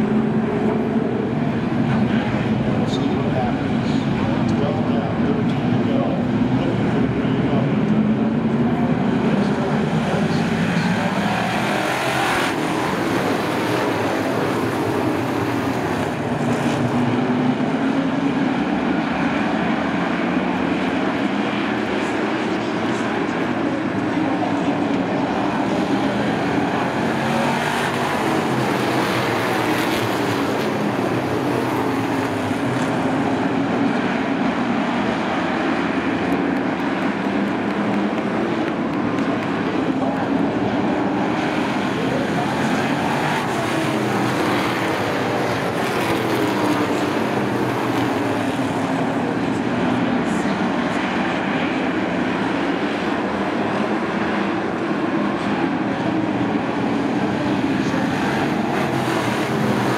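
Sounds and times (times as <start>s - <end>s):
race car engines droning: 0.0s - 59.9s.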